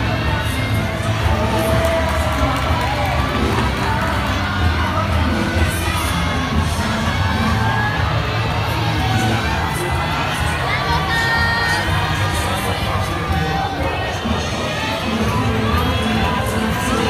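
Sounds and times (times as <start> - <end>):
faint ballroom dance music: 0.0 - 17.0
spectators shouting and cheering: 0.0 - 17.0.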